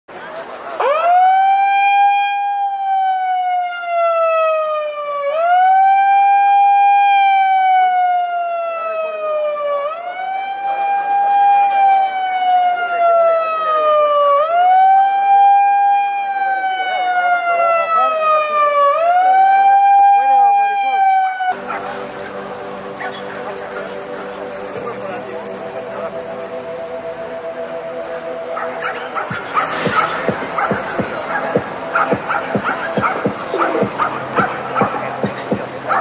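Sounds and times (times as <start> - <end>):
siren wailing: 0.8 - 36.0.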